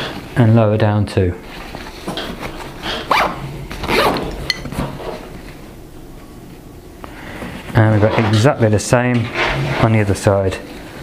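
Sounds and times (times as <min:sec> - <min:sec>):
nylon fabric rustling: 0:01.5 - 0:05.7.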